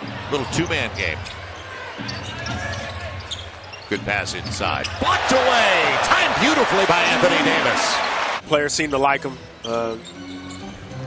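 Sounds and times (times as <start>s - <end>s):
arena crowd noise: 0.0s - 8.4s.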